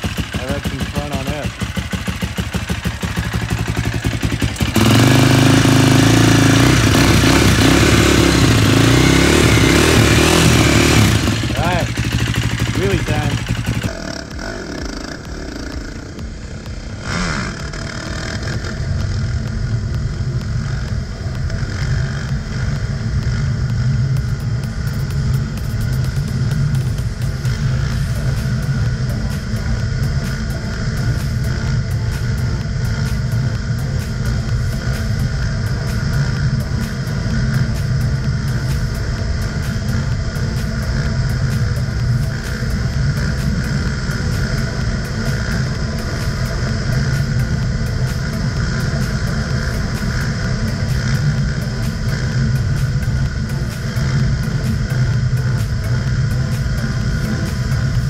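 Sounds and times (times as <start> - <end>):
quad engine running: 0.0 - 58.0.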